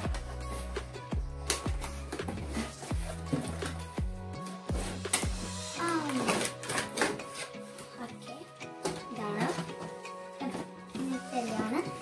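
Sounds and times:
background music: 0:00.0 - 0:12.0
cardboard and plastic scraping: 0:01.8 - 0:08.0, 0:08.8 - 0:12.0.

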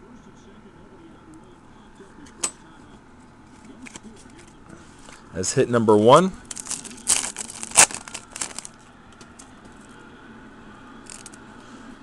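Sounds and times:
faint background voices: 0:00.0 - 0:05.3.

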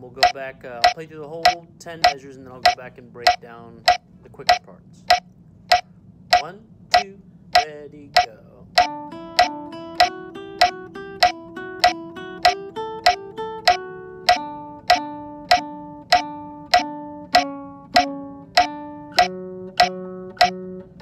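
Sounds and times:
nylon-string guitar melody: 0:00.0 - 0:04.0, 0:06.9 - 0:21.0
metronome click: 0:00.2 - 0:21.0.

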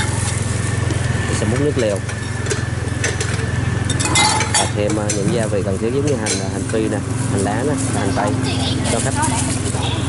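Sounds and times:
low mechanical drone: 0:00.0 - 0:10.0
metal ladle clinking: 0:02.1 - 0:05.3.

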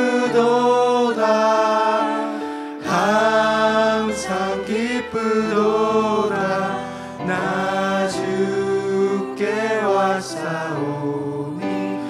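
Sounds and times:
man singing into a microphone: 0:02.8 - 0:12.0.

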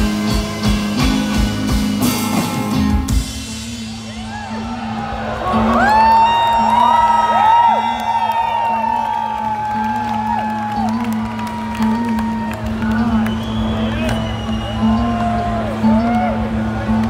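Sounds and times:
live band music: 0:00.0 - 0:06.1
crowd whooping and cheering: 0:03.8 - 0:17.0.

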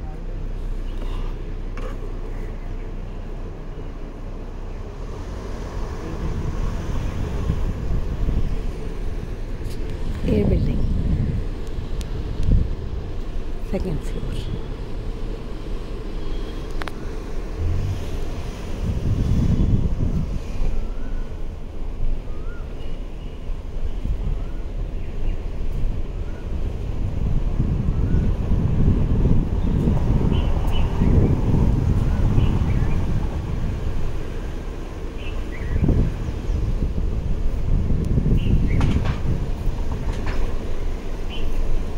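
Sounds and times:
wind buffeting microphone: 0:04.2 - 0:41.9.

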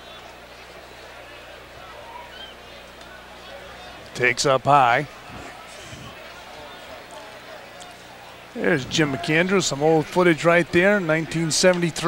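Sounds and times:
crowd murmur: 0:00.0 - 0:12.0
steady low hum: 0:00.2 - 0:12.0.

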